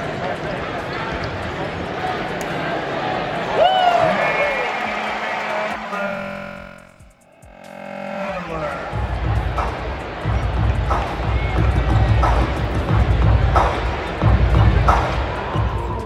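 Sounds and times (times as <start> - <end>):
arena crowd noise: 0.0 - 16.0
sustained music tones: 4.0 - 11.5.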